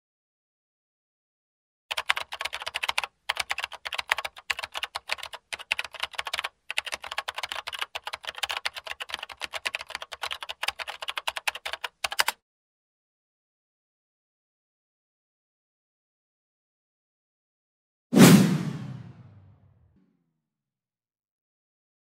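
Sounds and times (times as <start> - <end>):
keyboard typing: 1.9 - 12.4.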